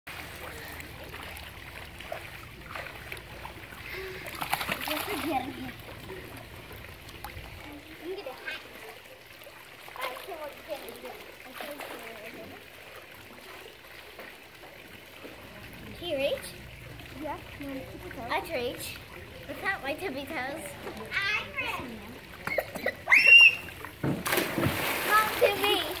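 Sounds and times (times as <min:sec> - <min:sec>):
water splashing in pool: 0:00.1 - 0:26.0
loud splash into pool: 0:23.1 - 0:26.0.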